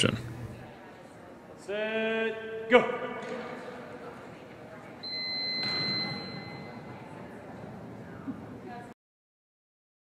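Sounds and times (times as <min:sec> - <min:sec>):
steady electronic beep: 0:05.0 - 0:06.9.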